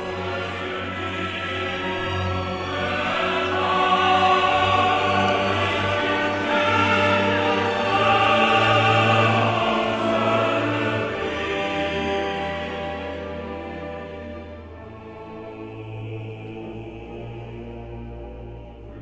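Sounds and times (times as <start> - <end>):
operatic chorus singing: 0.0 - 19.0
orchestra playing: 0.0 - 19.0.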